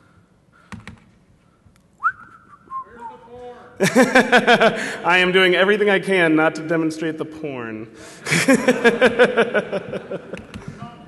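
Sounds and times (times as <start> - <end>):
person whistling: 2.0 - 3.3
laughter: 3.8 - 5.0, 8.2 - 11.0.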